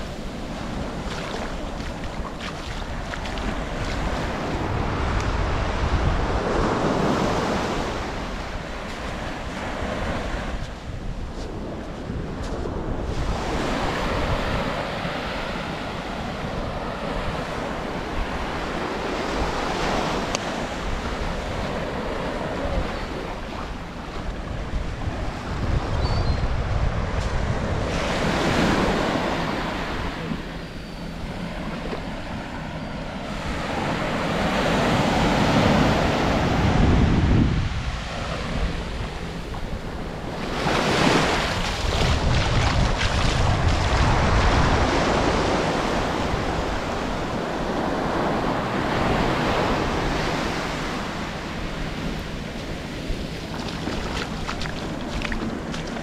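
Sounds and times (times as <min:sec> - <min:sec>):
sea waves breaking on beach: 0:00.0 - 0:25.9, 0:26.5 - 0:56.0
wind buffeting microphone: 0:00.0 - 0:56.0.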